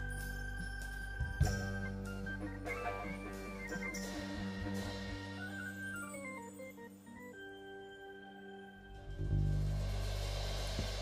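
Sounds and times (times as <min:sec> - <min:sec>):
held keyboard chord: 0:00.0 - 0:10.1.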